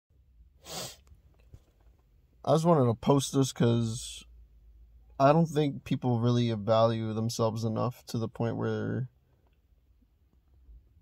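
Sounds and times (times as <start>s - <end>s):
man talking: 2.4s - 4.3s, 5.2s - 9.1s.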